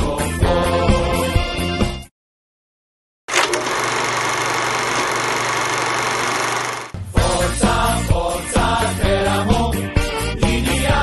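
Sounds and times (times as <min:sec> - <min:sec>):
mechanical whirring clatter: 0:03.3 - 0:07.0.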